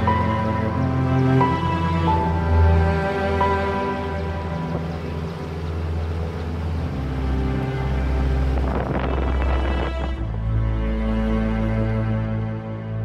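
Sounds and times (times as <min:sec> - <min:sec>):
music with slow sustained tones: 0:00.0 - 0:13.0
rush of noise: 0:04.0 - 0:10.9.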